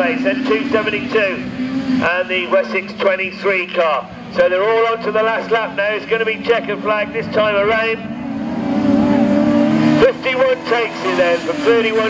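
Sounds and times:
racing car engines running hard: 0:00.0 - 0:12.0.

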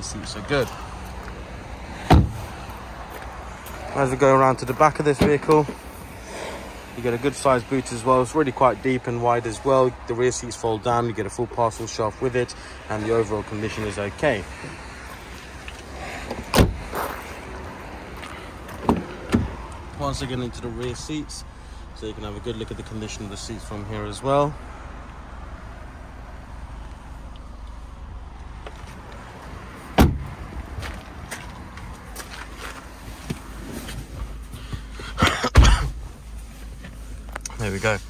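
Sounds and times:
car door shutting: 0:02.0 - 0:02.5, 0:16.3 - 0:17.1, 0:18.7 - 0:19.6, 0:29.9 - 0:30.4, 0:34.6 - 0:36.0
car tailgate slamming shut: 0:02.1 - 0:02.5, 0:16.5 - 0:16.8, 0:30.0 - 0:30.3
car door latch clicks: 0:16.3 - 0:16.8, 0:30.0 - 0:30.3.

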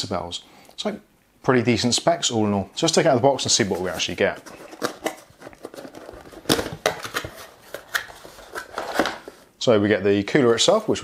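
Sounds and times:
cardboard box being opened: 0:03.7 - 0:09.4
packaging clicks and rustles: 0:03.8 - 0:09.5.

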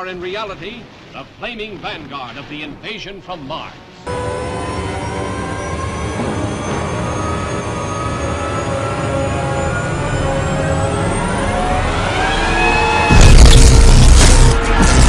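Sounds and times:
ominous drone of held tones: 0:04.1 - 0:15.0
deep rumble: 0:06.1 - 0:15.0.

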